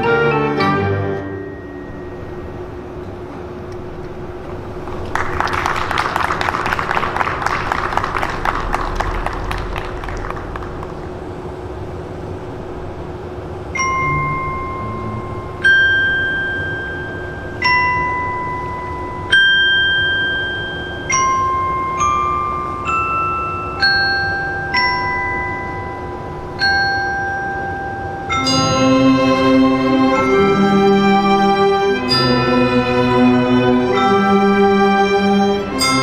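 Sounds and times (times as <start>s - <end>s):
glockenspiel slow melody: 1.1s - 2.6s, 13.8s - 36.0s
rapid metallic tinkles: 13.8s - 36.0s.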